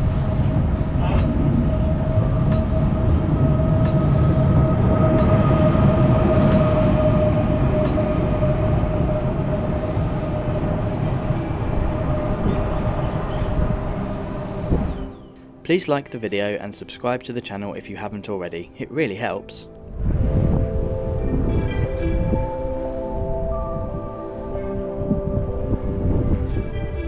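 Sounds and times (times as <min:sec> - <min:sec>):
train wheels rumbling: 0:00.0 - 0:15.2
train whine: 0:00.0 - 0:15.6, 0:19.8 - 0:27.0.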